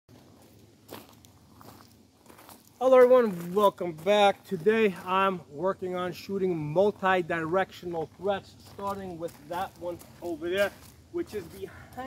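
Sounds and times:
footsteps on gravel: 0.1 - 12.0.

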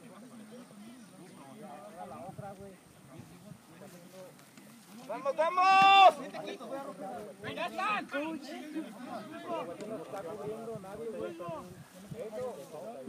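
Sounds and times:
voices calling and shouting: 0.0 - 13.0.

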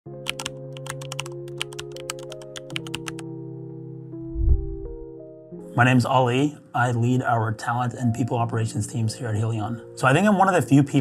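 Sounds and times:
soft music of held chords: 0.1 - 11.0
rapid keyboard typing: 0.2 - 3.2.

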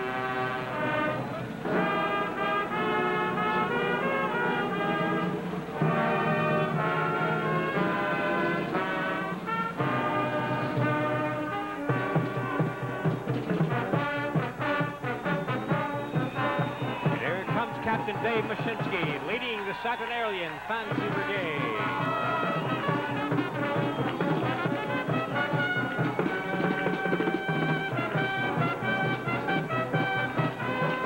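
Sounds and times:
brass band playing: 0.0 - 31.0.

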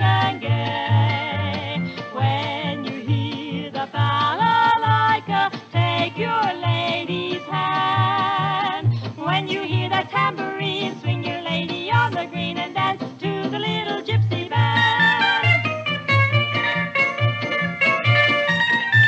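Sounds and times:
small band playing polka: 0.0 - 19.0.

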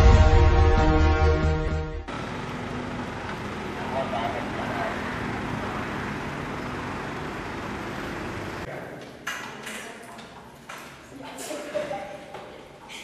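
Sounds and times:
traffic hum: 2.1 - 8.7.

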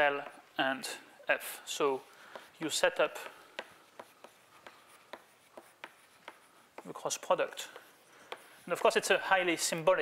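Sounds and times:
chalk tapping on blackboard: 2.0 - 9.3.

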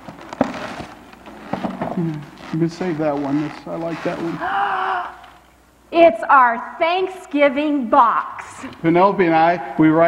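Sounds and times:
plastic bag crinkling: 0.0 - 4.4.

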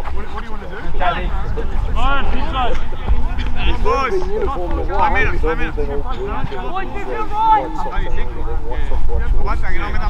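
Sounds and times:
men talking and calling out: 0.0 - 10.0
steady low rumble: 0.1 - 10.0.

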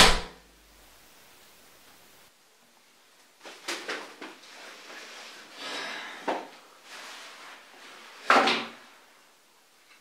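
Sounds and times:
pistol shot tail: 0.0 - 0.4.

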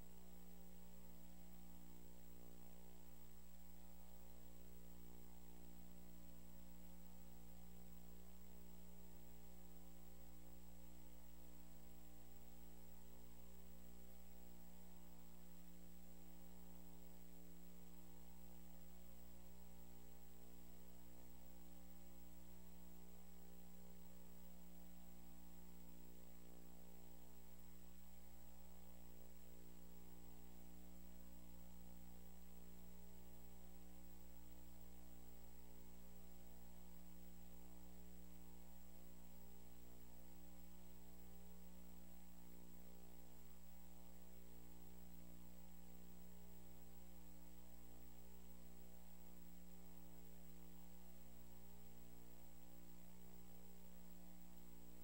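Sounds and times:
electrical mains hum: 0.0 - 55.0
faint high whine: 0.0 - 55.0.

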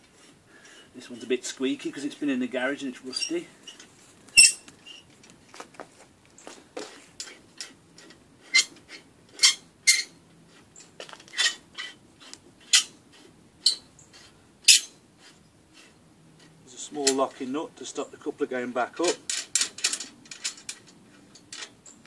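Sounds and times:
metallic squeaks and scrapes: 0.2 - 5.1, 7.0 - 17.5.

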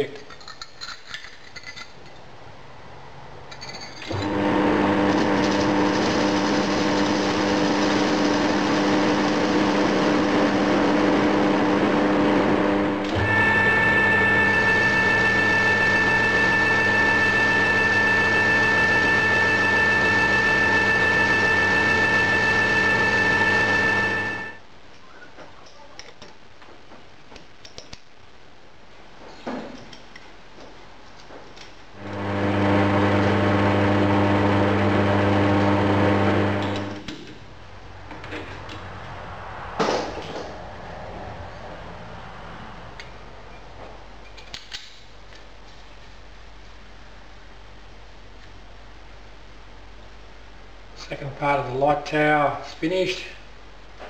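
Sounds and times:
metal lathe running: 12.7 - 24.6.

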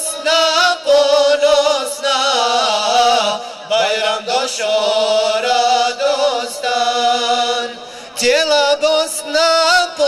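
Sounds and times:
male choir singing unaccompanied: 0.0 - 10.0.

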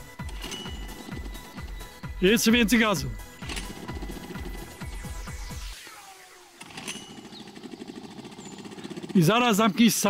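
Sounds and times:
outboard motor running unevenly: 0.0 - 10.0.

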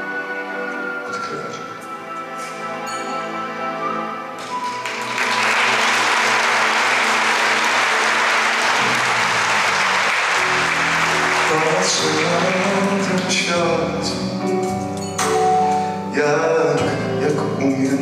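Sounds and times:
music playing: 0.0 - 18.0
song accompaniment: 0.0 - 18.0
audience applauding loudly: 4.4 - 14.0.

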